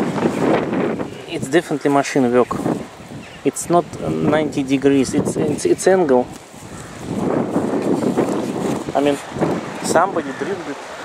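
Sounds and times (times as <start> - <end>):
wind buffeting the microphone: 0.0 - 11.0.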